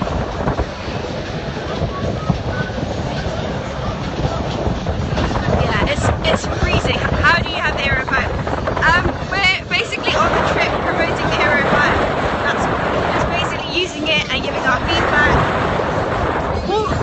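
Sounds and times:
wind buffeting microphone: 0.0s - 17.0s
woman's voice: 5.5s - 15.4s.

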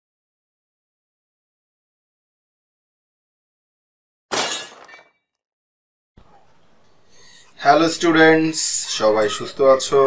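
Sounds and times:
glass shattering: 4.3s - 5.1s.

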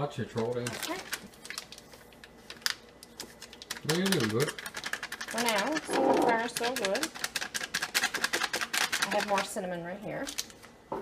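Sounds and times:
plastic bag crinkling: 0.2s - 10.8s.

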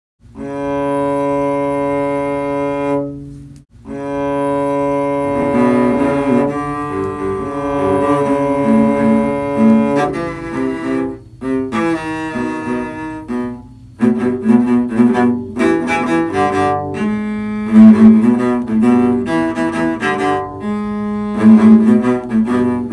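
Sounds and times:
cellos playing held notes: 0.4s - 22.9s
quick bowed cello notes: 0.4s - 22.9s.

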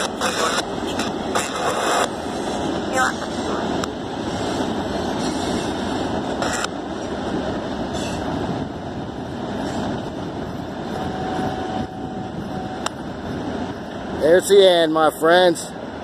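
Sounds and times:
train wheels on rail: 0.0s - 16.0s.

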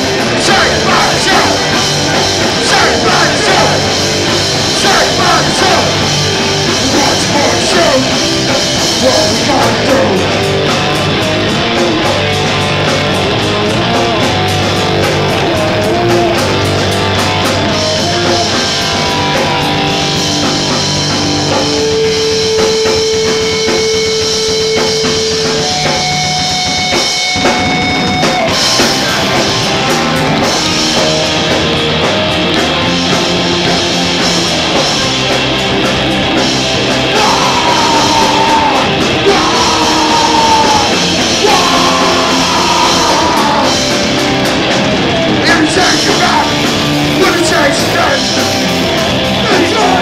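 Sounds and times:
distorted electric guitars: 0.0s - 50.0s
drum kit with fast cymbals: 0.0s - 50.0s.

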